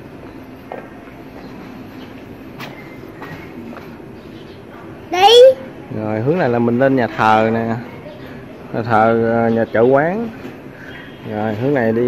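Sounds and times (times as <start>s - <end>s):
faint mechanical hum: 0.0s - 12.0s.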